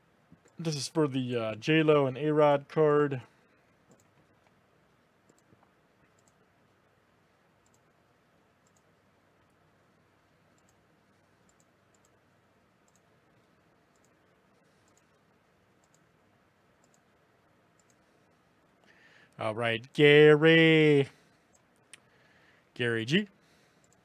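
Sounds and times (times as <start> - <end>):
computer mouse clicks: 3.8 - 4.6, 5.2 - 6.4, 7.6 - 7.9, 8.6 - 9.6, 10.5 - 12.2, 12.8 - 16.1, 16.8 - 17.1, 17.7 - 18.1, 23.8 - 24.0.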